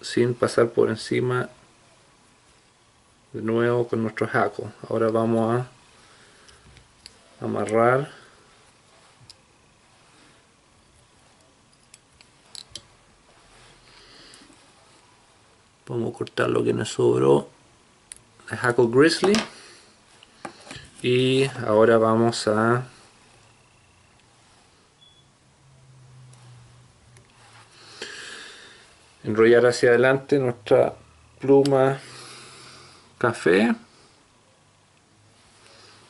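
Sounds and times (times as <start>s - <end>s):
faint low hum: 0.0s - 36.0s
soft brushing of thread: 5.0s - 15.7s, 19.6s - 29.6s.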